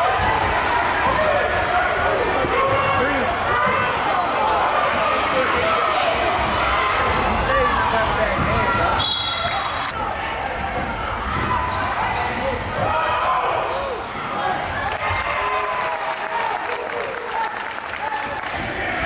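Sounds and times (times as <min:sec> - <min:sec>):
voices in large hall: 0:00.0 - 0:19.0.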